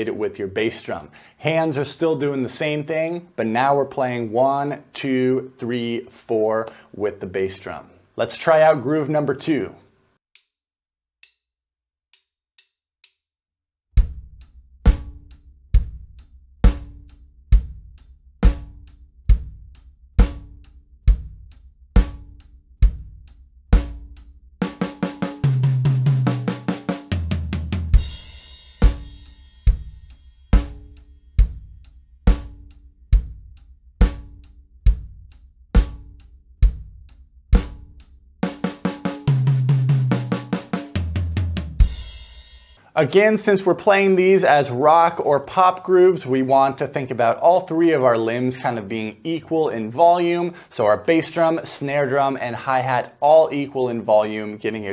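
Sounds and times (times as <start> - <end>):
rock drum groove: 14.0 - 42.8
drum fill on snare and toms: 23.8 - 31.6, 35.8 - 36.9, 37.6 - 42.8.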